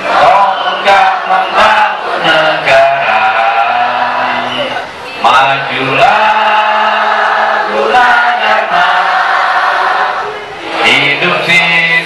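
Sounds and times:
group singing in unison: 0:00.0 - 0:11.9.

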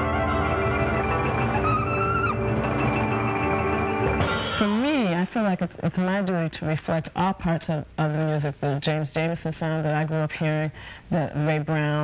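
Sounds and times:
piano: 0:00.0 - 0:04.8
lead instrument melody: 0:00.0 - 0:04.9
drums: 0:00.0 - 0:05.3.

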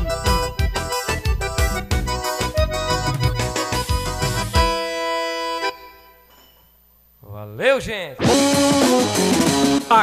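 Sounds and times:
live band music: 0:00.0 - 0:06.1, 0:08.2 - 0:10.0.

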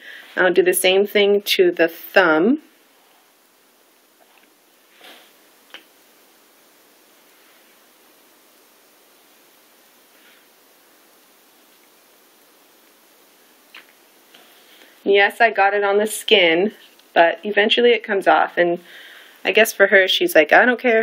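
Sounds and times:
room hiss: 0:00.0 - 0:21.0
soft rustle: 0:04.2 - 0:15.1.

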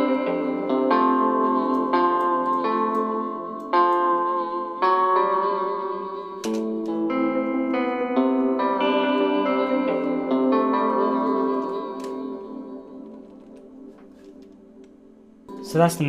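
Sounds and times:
plucked guitar trap melody: 0:00.0 - 0:14.0, 0:14.6 - 0:16.0.

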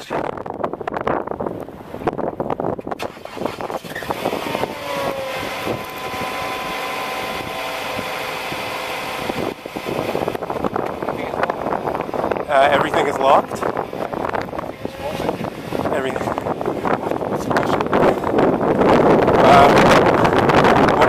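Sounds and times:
vehicle engine running: 0:03.2 - 0:21.0.

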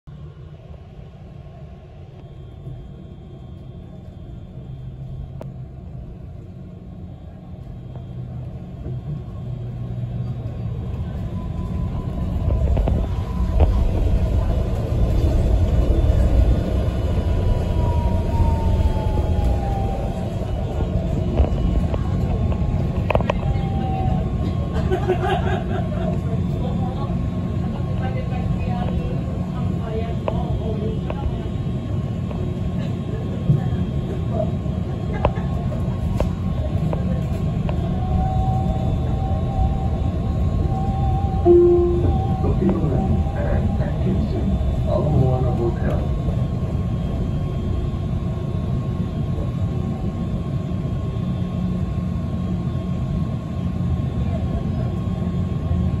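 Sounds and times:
bus engine and road rumble: 0:00.0 - 0:56.0
thin steady whine: 0:00.2 - 0:56.0.

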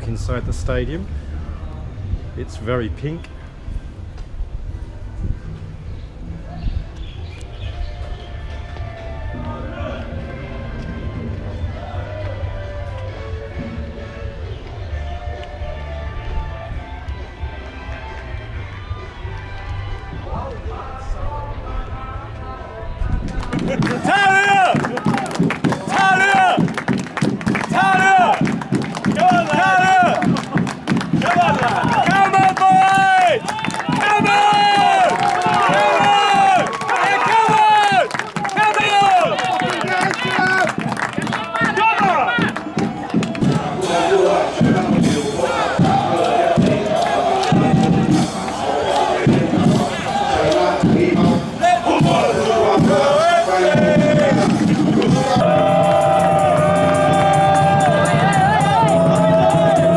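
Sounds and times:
football supporters chanting: 0:27.4 - 0:59.9.

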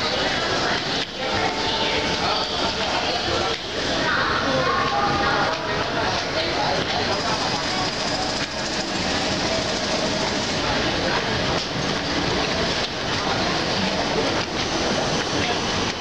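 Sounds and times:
people's voices: 0:00.0 - 0:16.0
train wheels rolling on rails: 0:00.0 - 0:16.0.

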